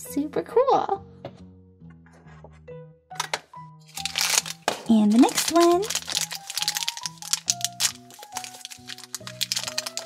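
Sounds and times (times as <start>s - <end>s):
background music: 0.0s - 10.0s
plastic wrapper crinkling and tearing: 3.9s - 10.0s.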